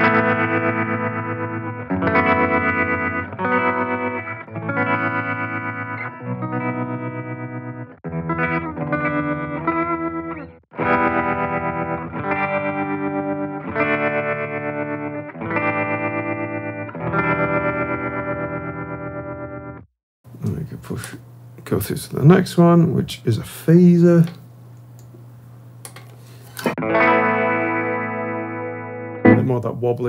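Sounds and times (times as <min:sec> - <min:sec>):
electric guitar chords with tremolo: 0:00.0 - 0:19.8, 0:26.8 - 0:29.8.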